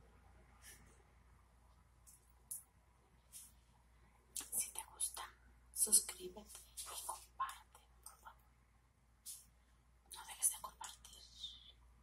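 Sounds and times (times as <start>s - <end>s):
woman whispering: 4.4s - 8.4s, 10.1s - 11.8s.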